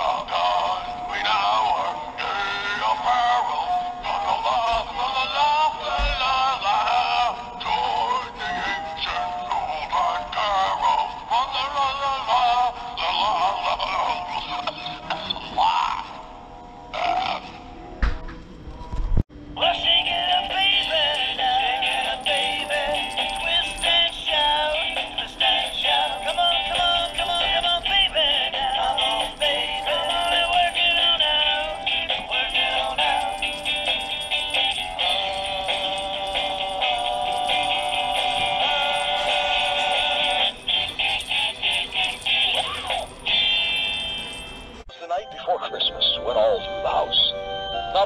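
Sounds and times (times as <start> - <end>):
tinny electronic toy song: 19.6 - 44.5.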